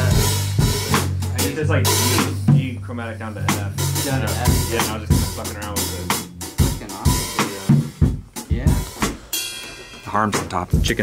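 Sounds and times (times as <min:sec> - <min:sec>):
cymbals: 0:00.0 - 0:11.0
kick drum: 0:07.5 - 0:09.2.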